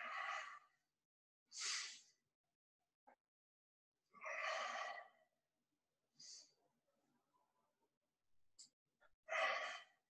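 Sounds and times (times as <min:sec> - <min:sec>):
loud breathy exhale: 0:01.5 - 0:02.1.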